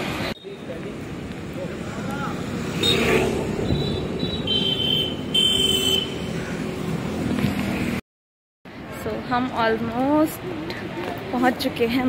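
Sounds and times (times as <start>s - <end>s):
passing vehicles hum: 0.0s - 8.0s.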